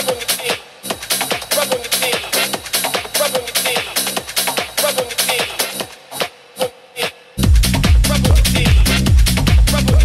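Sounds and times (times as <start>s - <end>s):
techno music: 0.0s - 10.0s.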